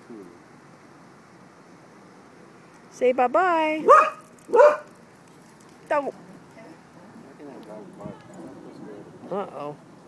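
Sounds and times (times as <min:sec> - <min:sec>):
dog barking: 0:03.8 - 0:04.9.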